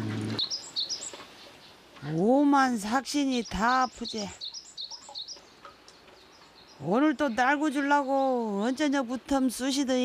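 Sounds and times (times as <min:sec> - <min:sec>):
faint rural outdoor background: 0:00.0 - 0:10.0
small bird chirping: 0:00.2 - 0:02.3, 0:03.1 - 0:09.0.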